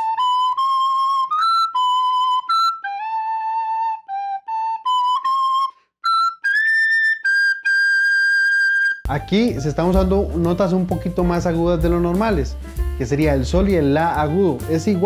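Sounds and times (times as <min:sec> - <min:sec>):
soprano recorder melody: 0:00.0 - 0:10.0.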